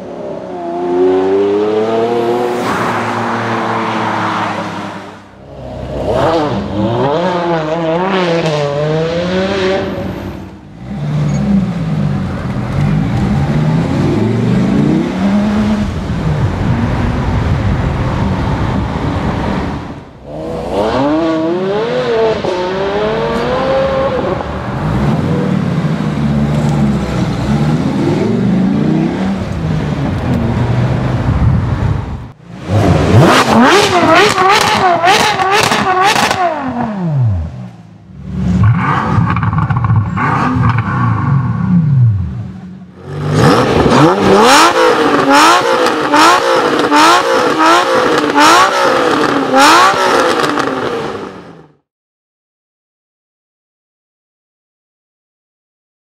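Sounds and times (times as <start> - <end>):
car engines revving: 0.0 - 51.8.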